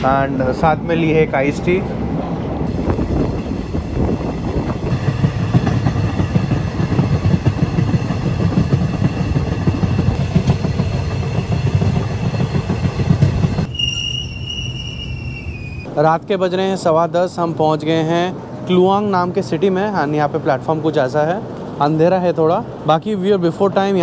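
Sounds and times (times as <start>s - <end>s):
train rumble with wheel clatter: 0.0s - 24.0s
train brakes squealing: 11.1s - 15.9s.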